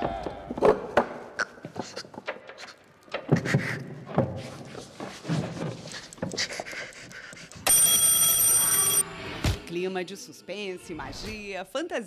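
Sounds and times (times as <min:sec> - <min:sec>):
high-pitched electric ringing: 0:07.7 - 0:09.2.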